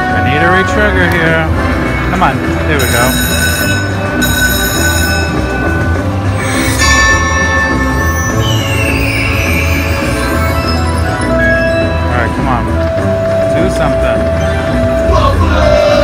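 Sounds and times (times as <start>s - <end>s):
slot machine bonus music: 0.2s - 15.1s
chiming jingle: 2.7s - 13.0s.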